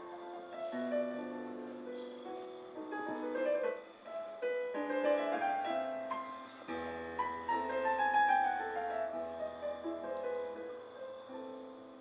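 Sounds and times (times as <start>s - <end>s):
digital piano classical piece: 0.0s - 12.0s.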